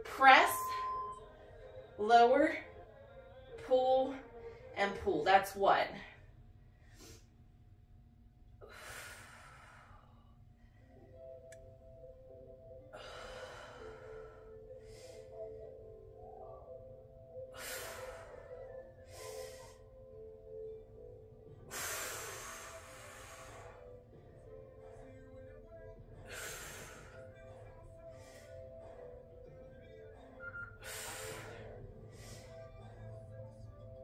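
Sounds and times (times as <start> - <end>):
faint background music: 0.0 - 34.0
woman breathing hard: 8.6 - 11.1, 12.9 - 15.7, 17.3 - 20.2, 21.6 - 24.4, 26.2 - 29.2, 30.8 - 33.2.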